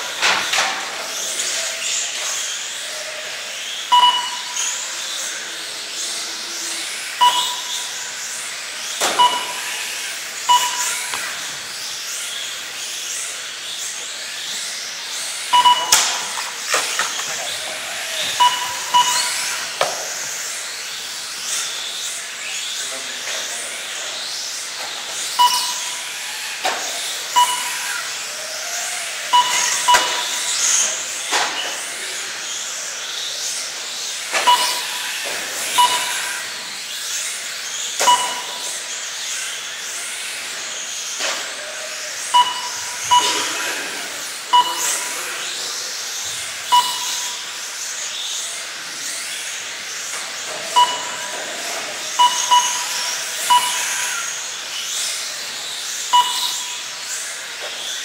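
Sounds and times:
rc car motors whining: 0:00.0 - 0:58.0
short electronic beeps: 0:03.9 - 0:04.8, 0:07.2 - 0:08.0, 0:09.2 - 0:09.7, 0:10.5 - 0:11.2, 0:15.5 - 0:16.6, 0:18.2 - 0:19.8, 0:25.4 - 0:26.0, 0:27.4 - 0:27.9, 0:29.3 - 0:30.5, 0:34.4 - 0:35.0, 0:35.7 - 0:36.4, 0:38.0 - 0:38.8, 0:42.3 - 0:43.9, 0:44.5 - 0:45.2, 0:46.7 - 0:47.5, 0:50.8 - 0:51.4, 0:52.2 - 0:54.2, 0:56.1 - 0:56.8.

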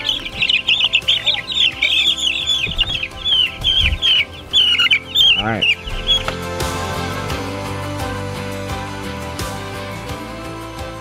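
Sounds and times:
low handling bump: 0:00.0 - 0:07.4
chicks peeping: 0:00.0 - 0:07.5.

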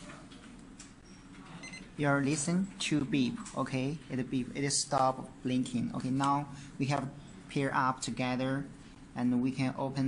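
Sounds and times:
faint electronic beep: 0:01.0 - 0:01.9.

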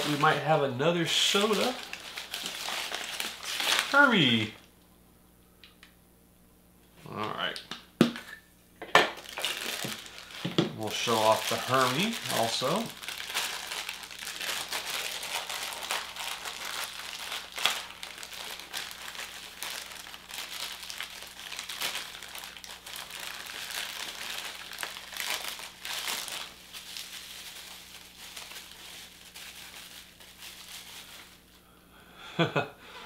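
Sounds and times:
plastic wrapping crinkling: 0:00.0 - 0:04.6, 0:09.1 - 0:31.6.

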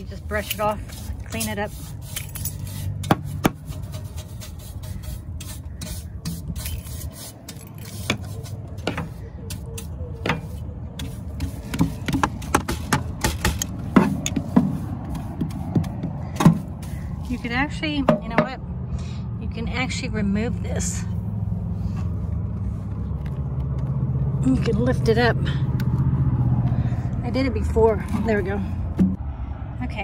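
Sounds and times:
brush scrubbing a step: 0:00.0 - 0:18.4.

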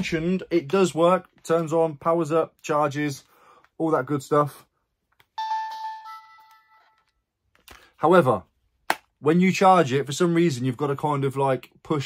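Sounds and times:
console startup chime: 0:05.4 - 0:07.2.

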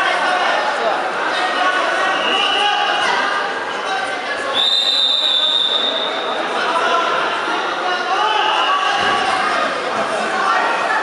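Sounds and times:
crowd voices: 0:00.0 - 0:11.0
referee's whistle blast: 0:04.5 - 0:06.2.

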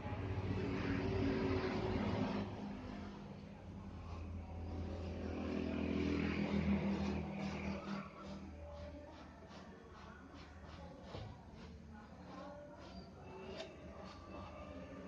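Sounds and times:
vehicle engine running: 0:00.0 - 0:10.5.

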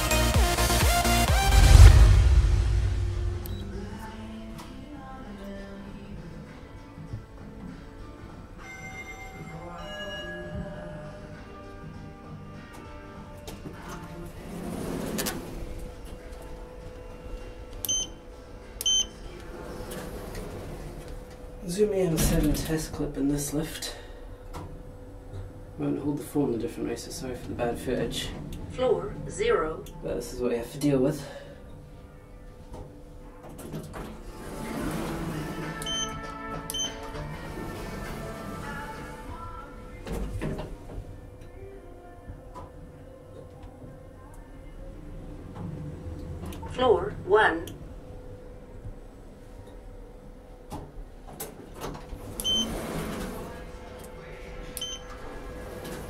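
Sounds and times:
steady hum: 0:00.0 - 0:07.2, 0:11.0 - 0:56.0
lift button beeping: 0:03.4 - 0:03.7, 0:17.8 - 0:18.2, 0:18.8 - 0:19.2, 0:35.8 - 0:37.1, 0:52.4 - 0:53.0, 0:54.8 - 0:55.2
lift doors sliding shut: 0:13.5 - 0:16.7, 0:19.2 - 0:23.0, 0:33.4 - 0:41.2, 0:45.0 - 0:46.7, 0:50.8 - 0:56.0.

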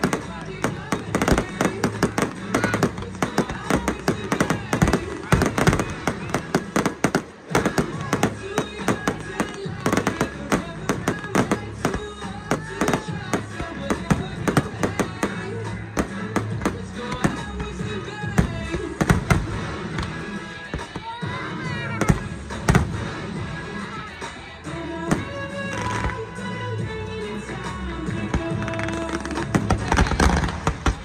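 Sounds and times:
fireworks bangs and crackles: 0:00.0 - 0:31.0
music with a steady beat: 0:00.0 - 0:31.0.

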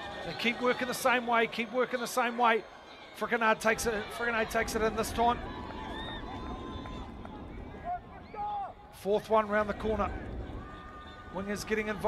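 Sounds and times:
players shouting: 0:00.0 - 0:12.0
low background rumble: 0:05.4 - 0:12.0.

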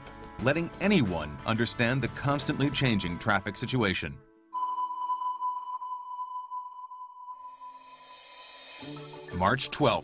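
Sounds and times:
steady high electronic tone: 0:04.6 - 0:08.8.

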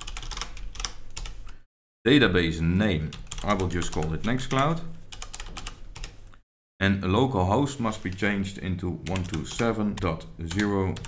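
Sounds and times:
computer keyboard typing: 0:00.0 - 0:01.4, 0:03.1 - 0:04.1, 0:05.1 - 0:06.2, 0:09.0 - 0:11.0.

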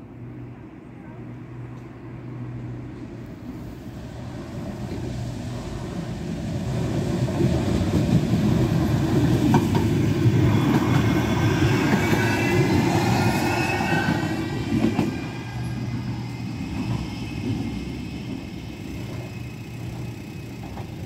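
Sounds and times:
tram rail rumble: 0:00.0 - 0:21.0
wheels clicking on track: 0:06.6 - 0:21.0.

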